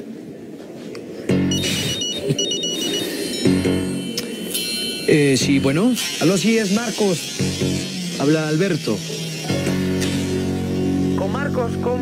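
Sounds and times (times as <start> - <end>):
background music: 1.3 - 6.4, 7.2 - 12.0
mobile phone ringtone: 1.4 - 5.7.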